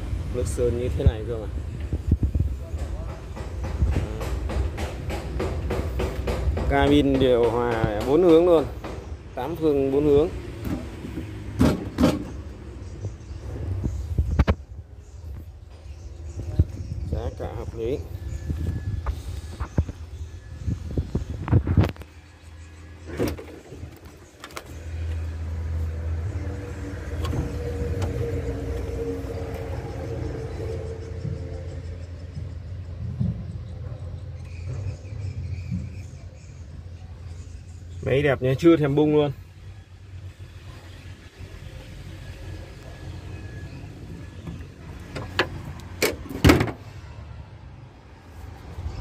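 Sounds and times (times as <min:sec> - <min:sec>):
sharp knocks: 0:02.8 - 0:09.1.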